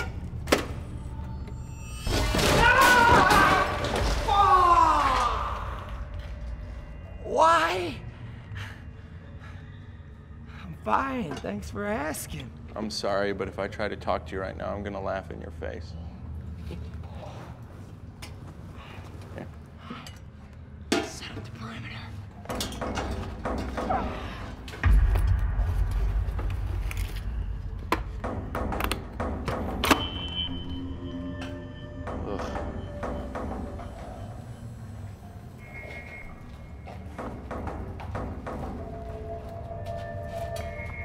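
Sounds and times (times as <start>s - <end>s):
film score music: 0.0s - 41.0s
deep low rumble: 24.8s - 28.5s.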